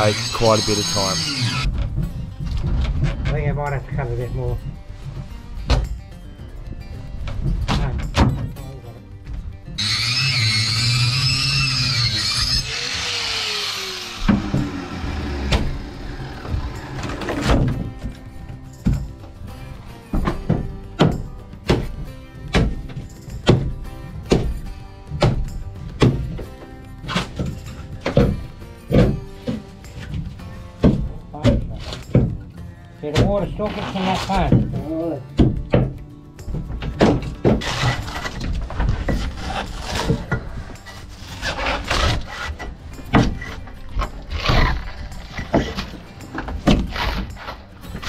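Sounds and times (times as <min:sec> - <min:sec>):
grinder whining: 0:00.0 - 0:01.7, 0:09.8 - 0:17.4
background music: 0:00.0 - 0:48.0
hand tool knocking wood: 0:27.2 - 0:29.7, 0:30.8 - 0:32.4, 0:34.3 - 0:37.7.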